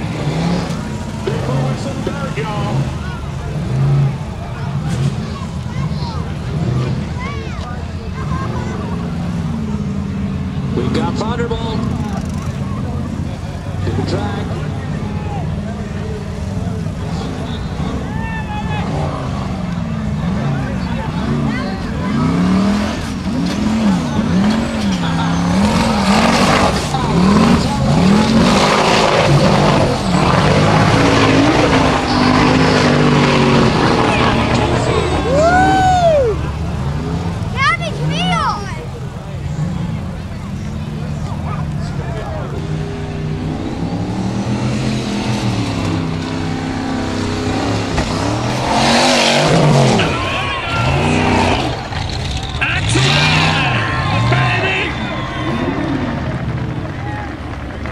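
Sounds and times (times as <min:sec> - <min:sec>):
buggy engine revving hard: 0:00.0 - 0:57.9
tyres spinning in dirt: 0:00.0 - 0:57.9.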